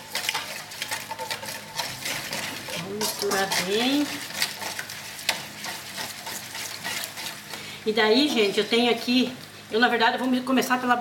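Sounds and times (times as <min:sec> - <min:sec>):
wire whisk beating in metal bowl: 0:00.0 - 0:07.5.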